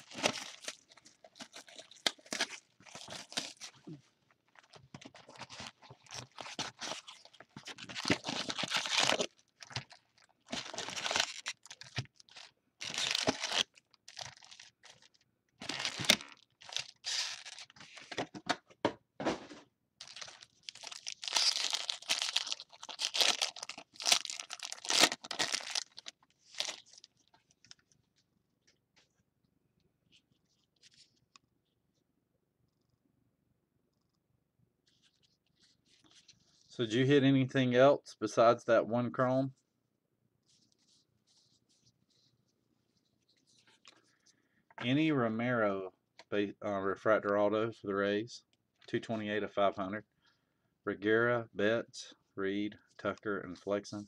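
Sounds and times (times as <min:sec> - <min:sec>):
wrappers crinkling and tearing: 0:00.0 - 0:18.1, 0:20.0 - 0:27.8.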